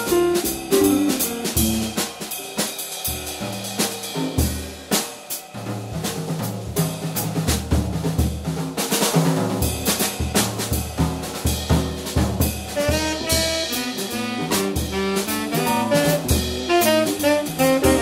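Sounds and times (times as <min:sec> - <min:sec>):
jazz drum solo: 0:00.0 - 0:18.0.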